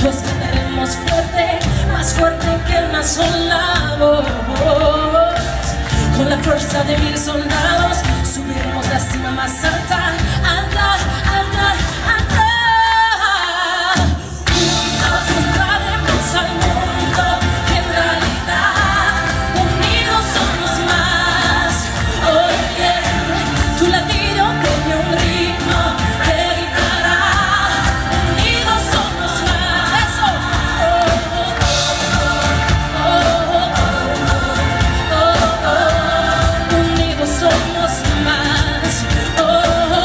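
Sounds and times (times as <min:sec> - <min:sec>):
live pop band playing: 0:00.0 - 0:40.0
woman singing: 0:00.0 - 0:40.0.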